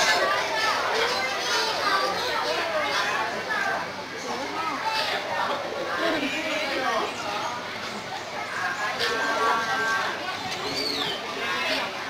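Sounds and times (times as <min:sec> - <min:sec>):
overlapping voices chattering: 0:00.0 - 0:12.0.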